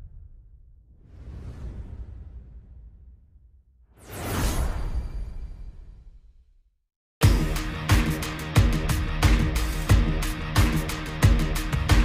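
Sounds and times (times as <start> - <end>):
low rumble: 0.0 - 3.7
loud whoosh: 0.9 - 5.4.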